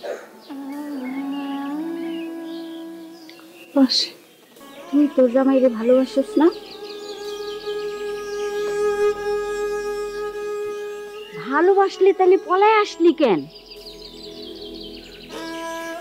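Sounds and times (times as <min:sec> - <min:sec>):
music holding long note: 0:00.3 - 0:16.0
woman speaking: 0:03.8 - 0:04.2, 0:04.8 - 0:06.6, 0:11.4 - 0:13.5.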